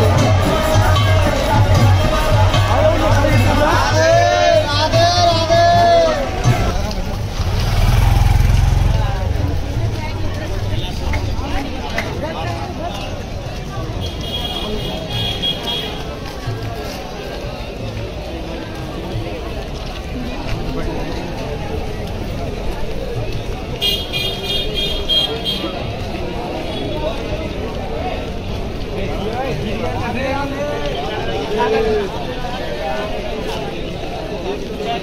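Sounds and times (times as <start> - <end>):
crowd chatter: 0.0 - 35.0
low engine rumble: 2.6 - 11.9.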